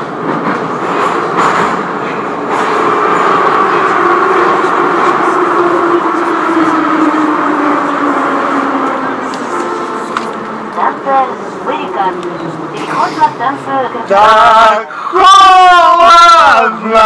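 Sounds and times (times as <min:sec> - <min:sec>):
metro train rumbling with whine: 0:00.0 - 0:17.0.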